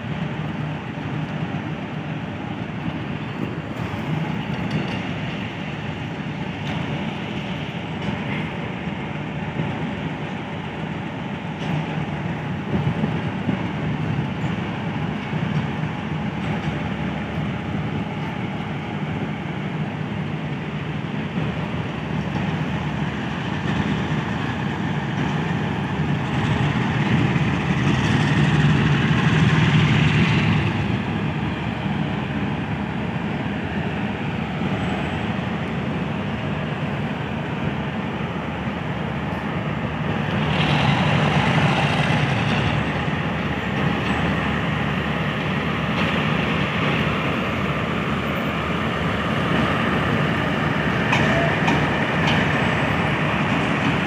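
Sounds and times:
diesel locomotive engine rumble: 0.0s - 54.0s
train wheels on rails: 0.0s - 54.0s.

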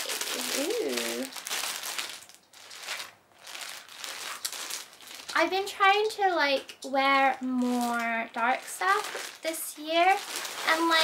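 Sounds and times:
plastic bag crinkling: 0.0s - 5.9s, 6.6s - 11.0s.

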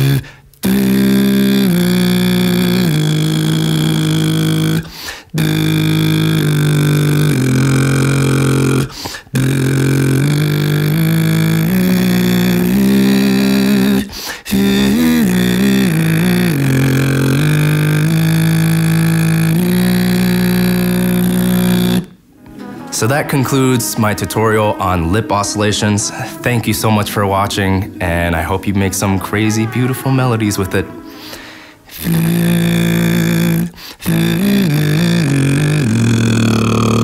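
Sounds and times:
beatboxer lip buzz: 0.0s - 22.2s, 31.2s - 37.0s
person singing held note: 17.3s - 33.2s.

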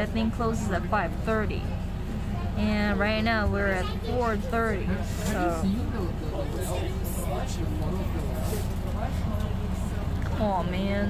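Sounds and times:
bus engine idling: 0.0s - 11.0s
faint voices: 0.0s - 11.0s.

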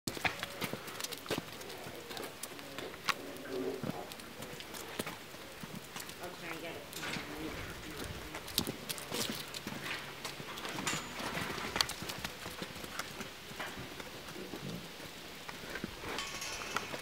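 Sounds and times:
hooves clicking on concrete: 0.1s - 17.0s.

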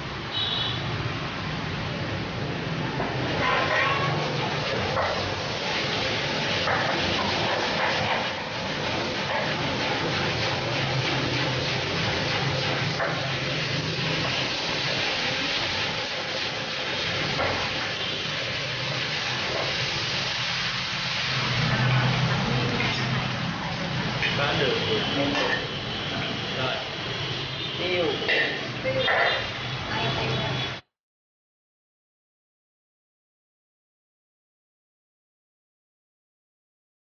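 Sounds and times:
meat and vegetables sizzling in pan: 3.2s - 27.5s.

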